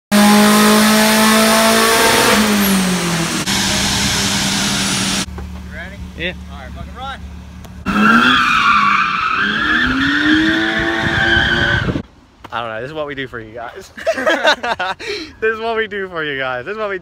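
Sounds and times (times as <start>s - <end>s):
car engine revving on dynamometer: 0.1s - 5.3s, 7.8s - 12.0s.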